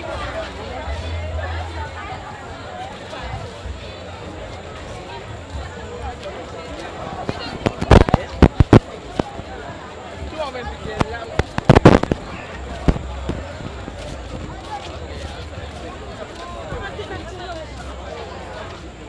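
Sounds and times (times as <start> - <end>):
crowd chatter: 0.0 - 19.0
firecrackers banging: 11.4 - 12.3.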